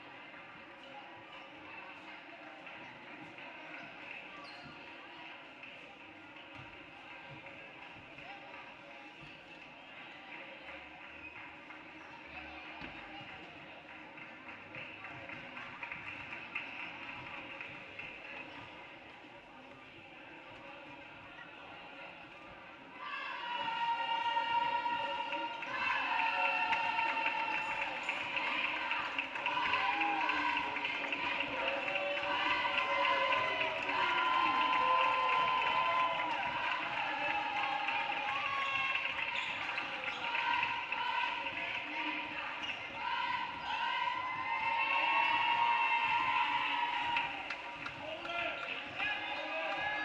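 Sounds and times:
voices echoing in hall: 0.0s - 50.0s.

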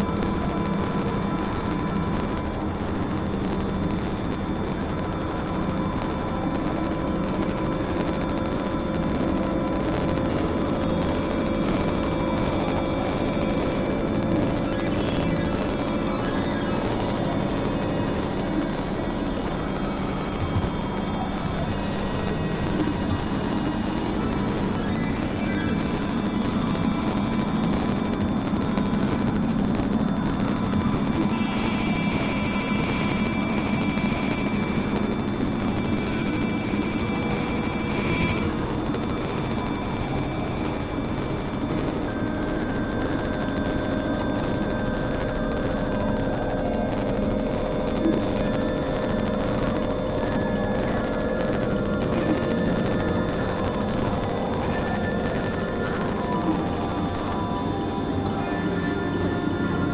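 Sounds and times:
low rumbling noise bed: 0.0s - 59.9s
held high synthesizer tones: 10.3s - 59.9s.

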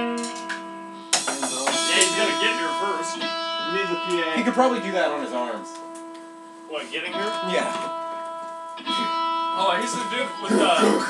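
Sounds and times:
electric guitar chords: 0.0s - 11.0s
voices talking: 1.3s - 5.8s, 8.8s - 11.0s.

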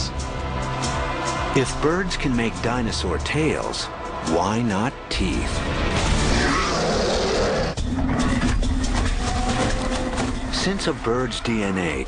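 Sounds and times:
dinosaur roar: 6.1s - 10.3s.

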